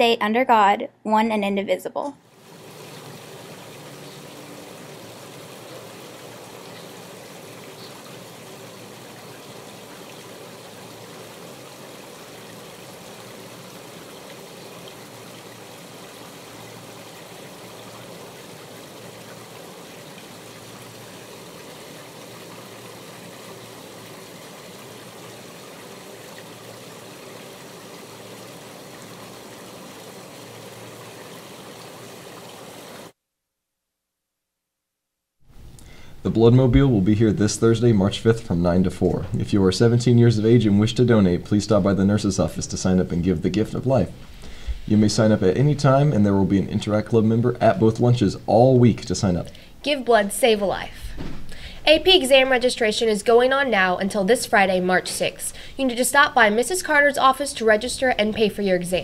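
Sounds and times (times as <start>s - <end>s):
water trickling into pond: 2.2s - 33.2s, 35.5s - 50.8s.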